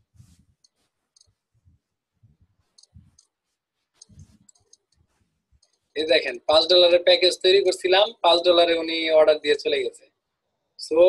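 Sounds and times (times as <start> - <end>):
computer mouse clicks: 2.8 - 3.3, 4.0 - 5.9.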